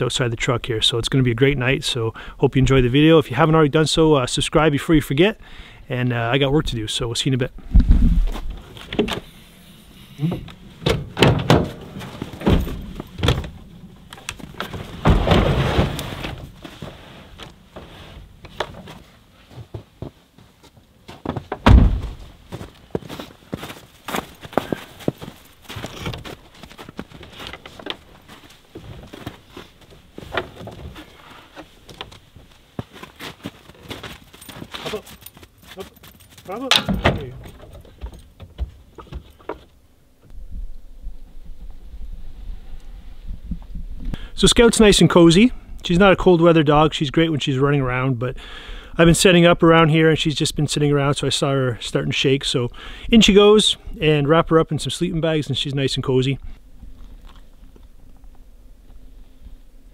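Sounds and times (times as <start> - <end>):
wooden hatch opening: 8.3 - 9.3, 10.2 - 16.5, 21.4 - 22.2, 36.7 - 39.3.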